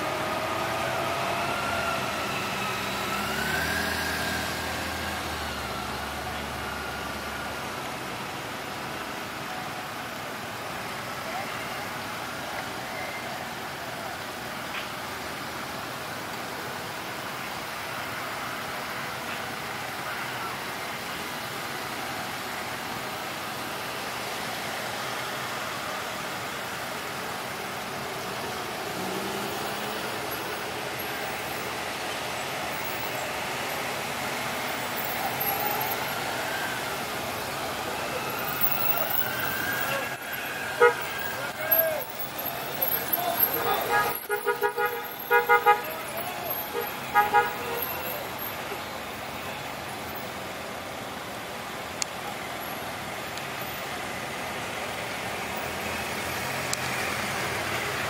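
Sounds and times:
cars and motorcycles driving past: 0.0s - 8.3s, 21.4s - 58.0s
wavering siren tones: 34.9s - 43.0s.

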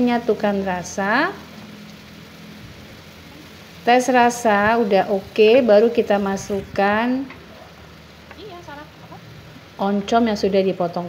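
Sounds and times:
vegetables sizzling in a wok: 0.0s - 11.0s.

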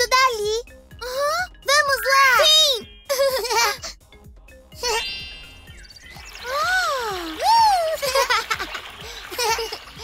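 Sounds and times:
soft background music: 0.0s - 10.0s
high tinkling chime: 4.8s - 7.2s.

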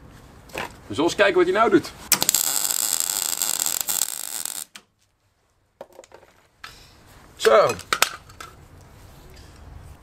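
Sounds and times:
welding arc crackling: 2.1s - 4.8s.

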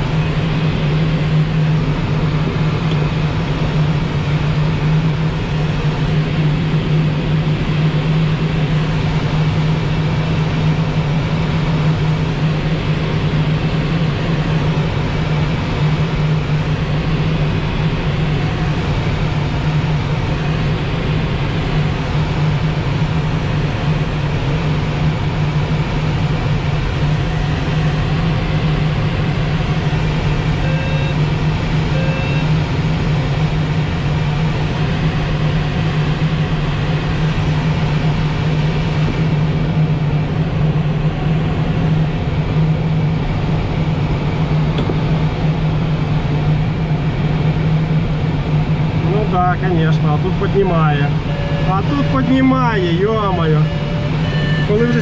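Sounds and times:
constant low drone: 0.0s - 55.0s
short beeps: 30.6s - 31.2s, 31.9s - 32.5s, 51.1s - 55.0s.

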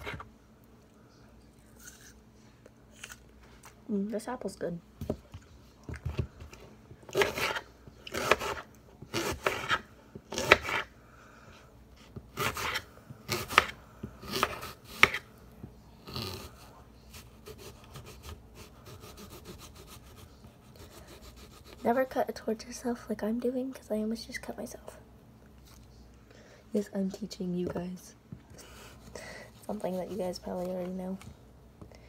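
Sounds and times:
knife cutting crisp apple: 5.9s - 10.9s, 12.2s - 15.3s, 16.0s - 21.9s.

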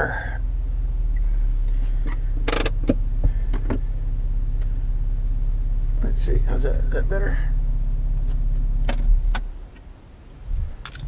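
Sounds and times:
pickup truck idling hum: 0.0s - 11.0s.

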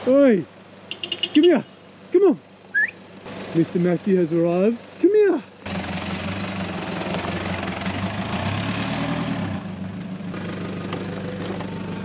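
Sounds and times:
car engine running: 5.6s - 8.4s.

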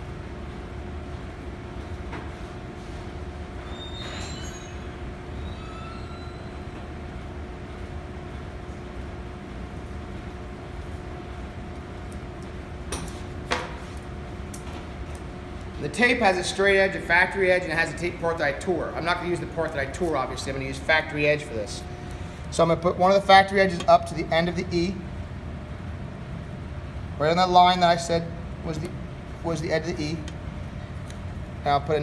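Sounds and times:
low room hum: 0.0s - 32.0s
faint high squeaks: 3.6s - 6.9s.

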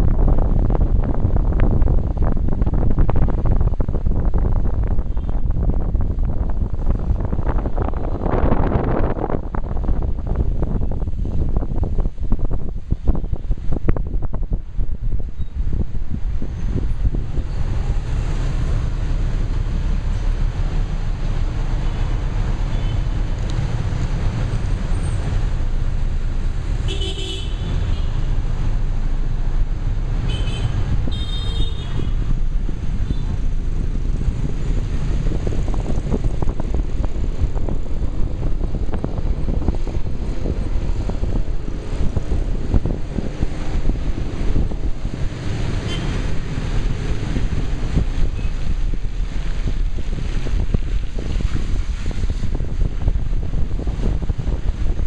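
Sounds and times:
car and road rumble: 0.0s - 55.0s
vehicle horns beeping: 26.9s - 28.3s, 30.2s - 32.2s, 45.8s - 46.2s.

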